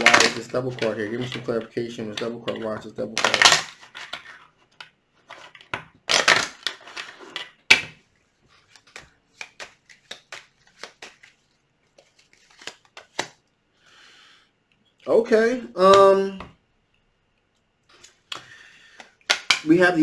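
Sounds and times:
cards shuffling: 0.0s - 13.4s, 17.9s - 19.8s
card snaps and taps: 8.7s - 11.3s, 18.3s - 19.7s.

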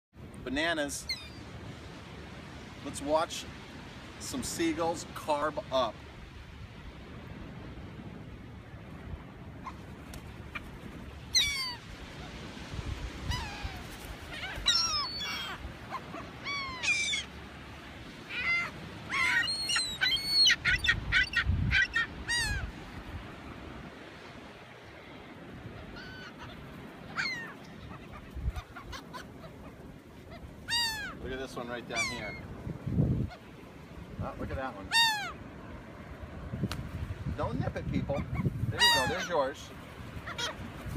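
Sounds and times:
gulls calling: 9.5s - 23.0s, 24.8s - 35.8s, 38.0s - 40.9s.

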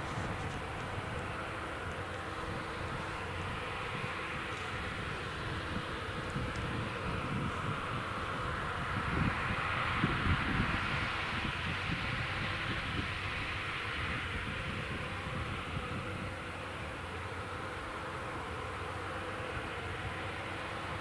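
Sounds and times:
tractor and baler droning: 0.0s - 21.0s.

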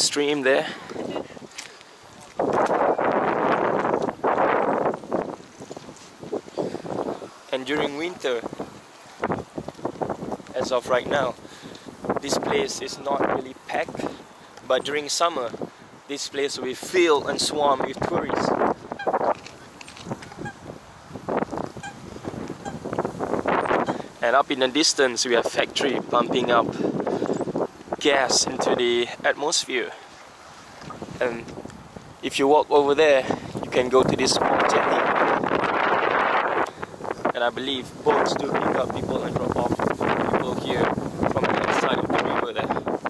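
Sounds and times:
wind buffeting microphone: 0.0s - 29.3s, 30.6s - 43.0s
geese honking: 21.7s - 23.0s.

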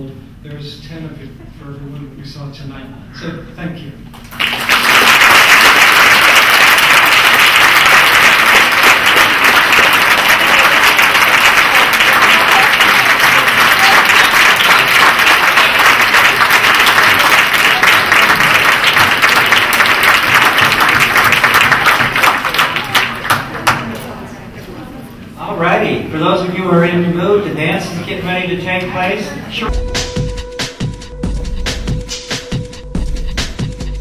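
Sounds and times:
audience applauding: 4.2s - 24.1s.

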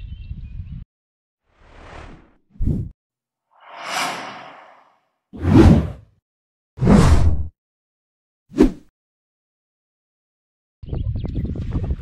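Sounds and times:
soft swish: 3.6s - 6.0s
whooshes: 3.6s - 6.0s.

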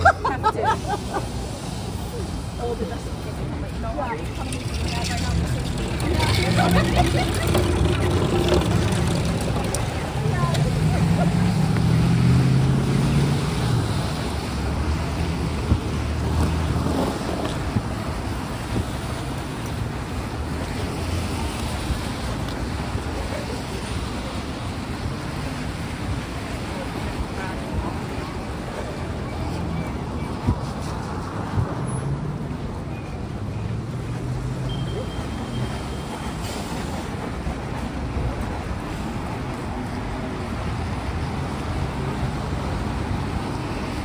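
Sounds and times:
engine rumble: 0.0s - 44.0s
voices of passers-by: 0.0s - 44.0s
tyre hiss on wet road: 0.6s - 3.7s, 36.0s - 37.2s.

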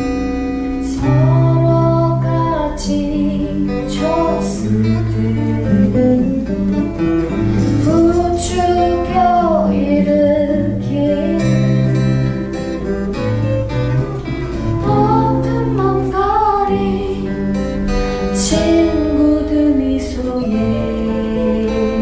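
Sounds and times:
acoustic guitars: 0.0s - 22.0s
woman singing slow song: 0.7s - 7.0s, 7.6s - 12.5s, 14.8s - 17.7s, 18.3s - 22.0s.

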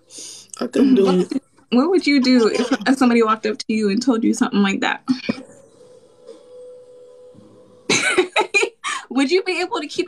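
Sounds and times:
woman laughing: 0.8s - 3.2s, 7.9s - 9.5s.

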